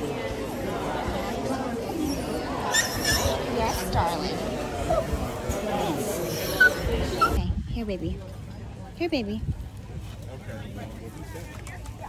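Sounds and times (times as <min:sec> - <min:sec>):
hubbub of voices: 0:00.0 - 0:12.0
dog whimpering: 0:02.0 - 0:03.9, 0:06.2 - 0:07.4.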